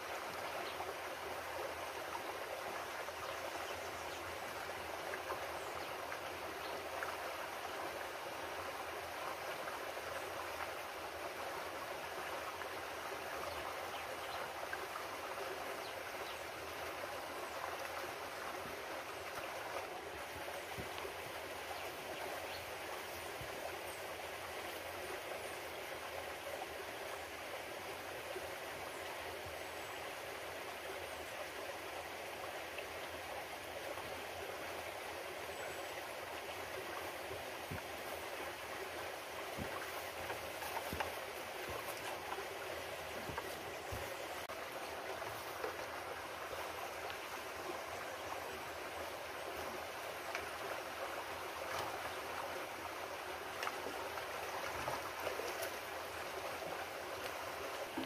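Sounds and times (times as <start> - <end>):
stream flowing over rocks: 0.0 - 58.0.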